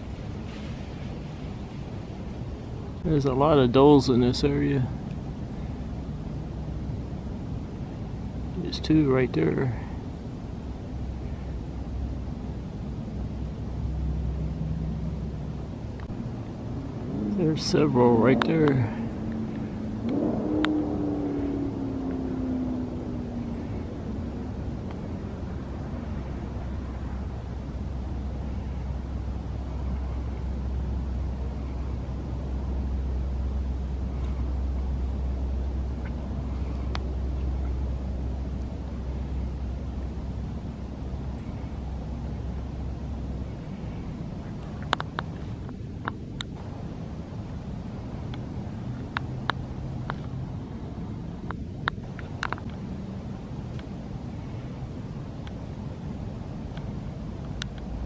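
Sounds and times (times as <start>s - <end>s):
vehicle engine rumbling: 0.0s - 58.0s.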